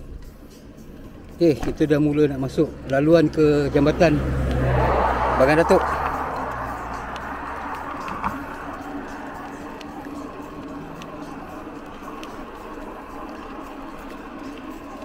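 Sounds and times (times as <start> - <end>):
bike tyres rolling: 0.2 - 15.0.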